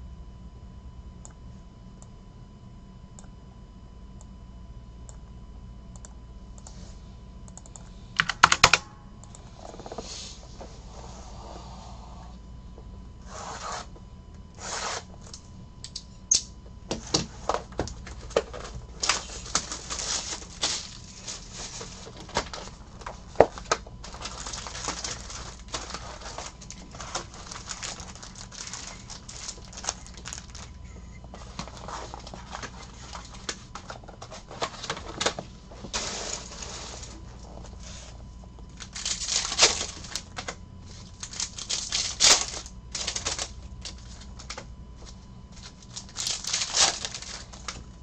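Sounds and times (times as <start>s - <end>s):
foil packs crinkling: 17.3s - 48.0s
plastic shrink-wrap tearing: 18.6s - 30.8s, 38.8s - 44.6s, 45.6s - 47.8s.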